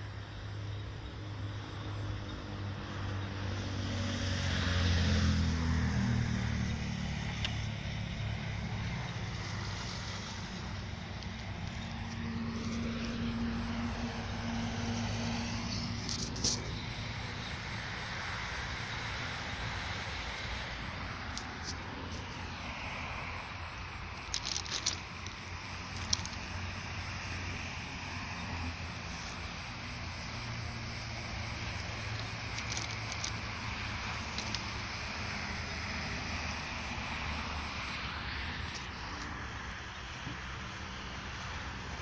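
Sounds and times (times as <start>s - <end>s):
moving vehicle rumbling: 0.0s - 42.0s.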